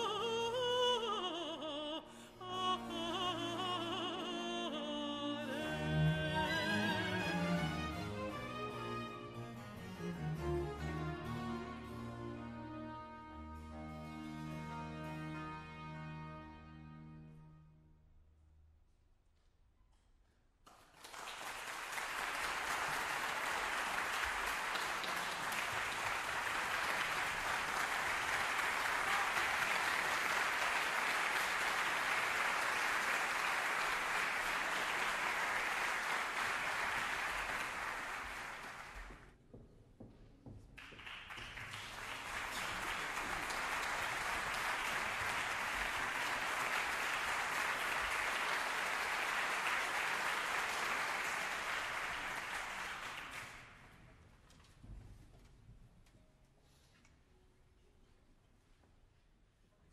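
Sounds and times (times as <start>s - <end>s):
audience applauding: 20.7s - 39.2s, 40.8s - 54.0s.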